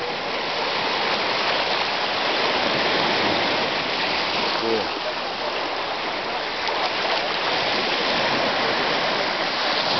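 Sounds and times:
surf washing over sand: 0.0 - 9.9.

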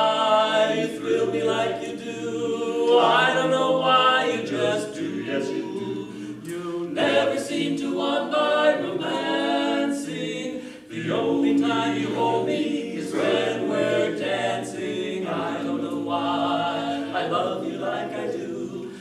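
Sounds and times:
men singing in close harmony: 0.0 - 19.0.

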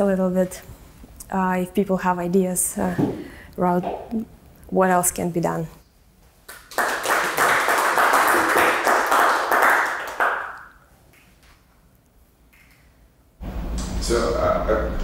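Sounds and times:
audience applause: 6.7 - 10.7.

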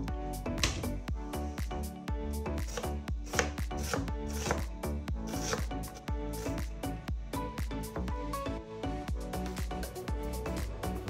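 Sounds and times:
background music with steady beat: 0.0 - 11.0
knife chopping vegetables: 2.7 - 4.7, 5.3 - 6.6.

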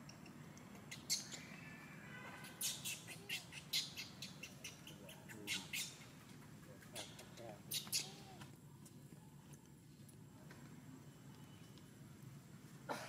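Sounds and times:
high-pitched chirps and squeaks: 0.1 - 1.8, 2.4 - 6.1, 7.0 - 8.3.

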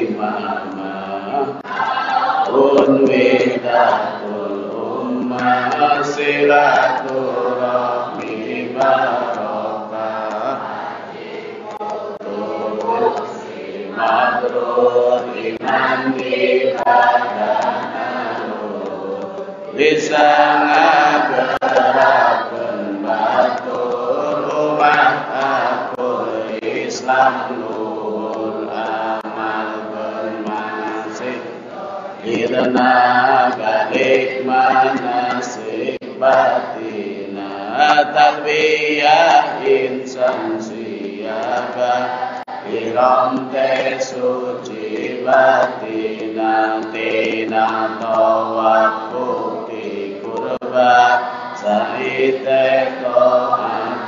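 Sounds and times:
voices chanting religious recitation: 0.0 - 54.0.

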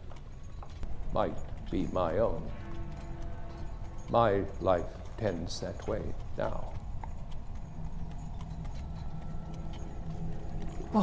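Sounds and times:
hooves knocking: 0.0 - 11.0
low steady street rumble: 0.0 - 11.0.

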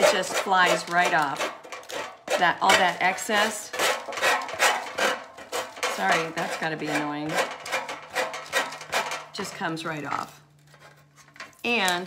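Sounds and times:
sanding block rasping on paper: 0.0 - 9.1.

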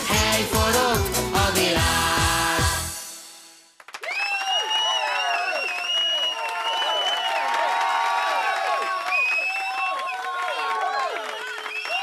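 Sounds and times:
song playing: 0.0 - 3.8
audience applause: 3.8 - 12.0
long high whistle: 4.0 - 7.5, 8.9 - 10.3
people whooping and cheering: 4.0 - 12.0.

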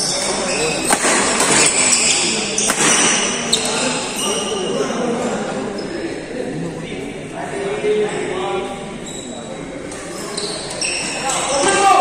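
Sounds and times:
shoe squeaks on court floor: 0.0 - 4.8, 9.0 - 11.8
voices talking: 0.0 - 12.0
racket hitting shuttlecock: 0.8 - 3.4.

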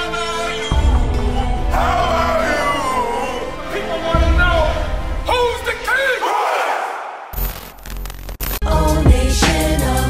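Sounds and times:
men shouting together: 1.6 - 4.9, 5.7 - 7.3
music with a beat: 8.6 - 10.0.

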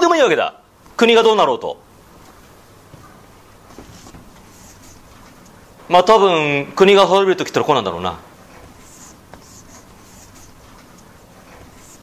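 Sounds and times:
faint soft scratches: 3.7 - 5.1, 8.5 - 10.8, 11.4 - 12.0.

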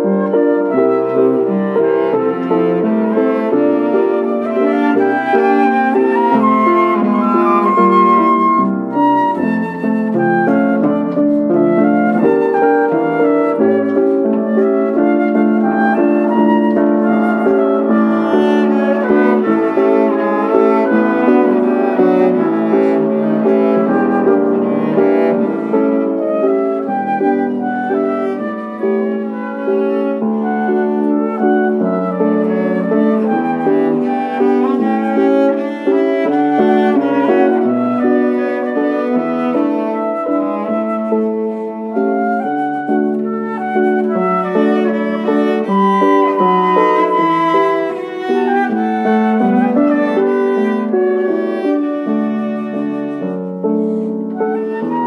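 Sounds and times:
cello: 0.0 - 55.0
flute melody: 0.0 - 55.0
piano: 0.0 - 55.0.

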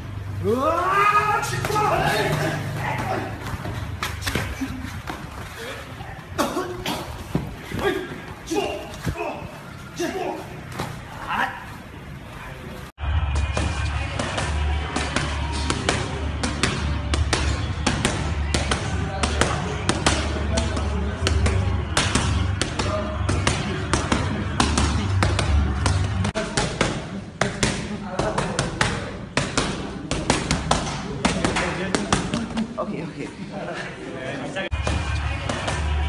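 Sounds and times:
boxing gloves slapping mitts: 1.4 - 5.6, 13.3 - 32.6.

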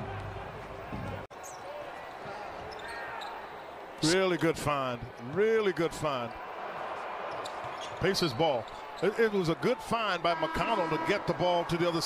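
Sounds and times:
faint court noise: 0.0 - 9.8.

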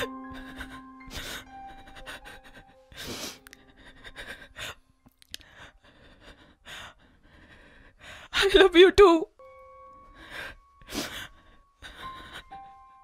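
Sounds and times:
woman crying: 0.0 - 4.7, 8.3 - 9.3.

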